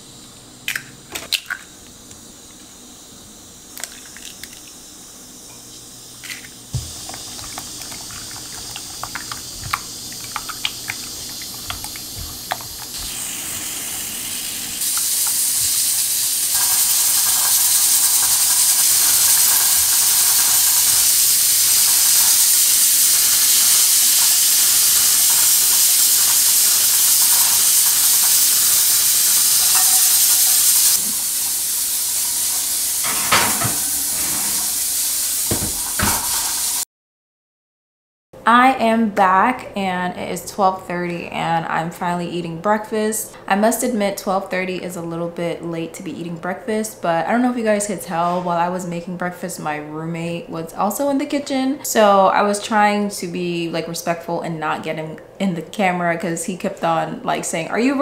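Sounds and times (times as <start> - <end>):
pressure cooker hissing steam: 4.8 - 36.8.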